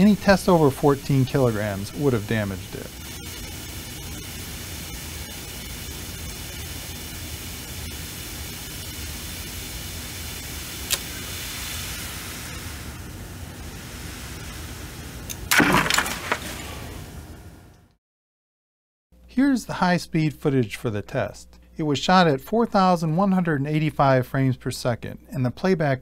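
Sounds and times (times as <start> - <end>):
sand pouring into a bucket: 0.1 - 13.0, 13.6 - 17.1
wood cracking: 15.3 - 16.9
wood bridge snapping apart: 15.4 - 17.0.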